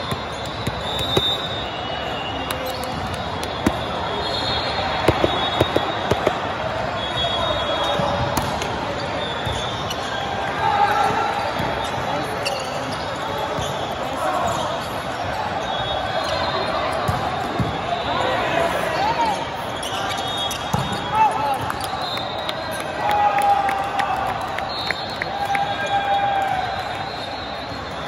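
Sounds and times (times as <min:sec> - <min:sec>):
sneakers squeaking on court: 0:00.0 - 0:10.2, 0:11.0 - 0:17.8, 0:19.4 - 0:22.0
crowd chatter in hall: 0:00.0 - 0:28.0
players calling out: 0:00.5 - 0:11.9
volleyball smacks and thuds: 0:05.1 - 0:06.5.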